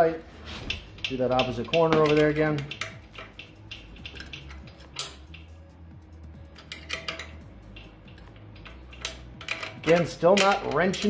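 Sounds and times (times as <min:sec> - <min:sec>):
ratchet wrench clicking: 0:00.7 - 0:05.7, 0:06.4 - 0:11.0.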